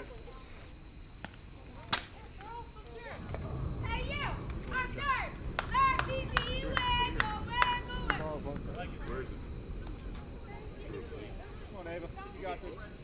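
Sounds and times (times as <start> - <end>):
girls shouting a cheer: 3.8 - 8.2
sharp claps: 5.5 - 8.6.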